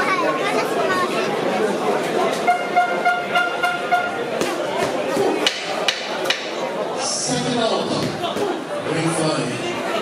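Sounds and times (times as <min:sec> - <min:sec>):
sharp knocks: 0:04.4 - 0:06.5.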